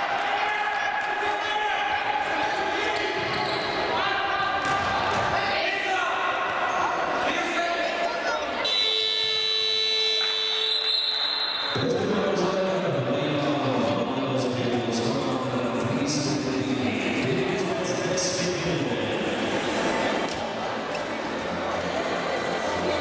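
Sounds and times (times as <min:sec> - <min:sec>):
players' voices echoing: 0:00.0 - 0:23.0
electronic buzzer tone: 0:08.7 - 0:11.8.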